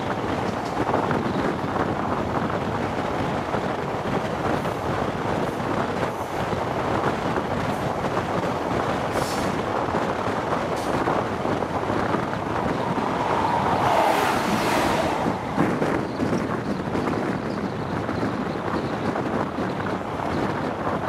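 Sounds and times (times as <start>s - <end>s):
passing train whoosh: 0.0s - 17.4s
train running noise: 0.0s - 21.0s
wind rushing over microphone: 0.0s - 21.0s.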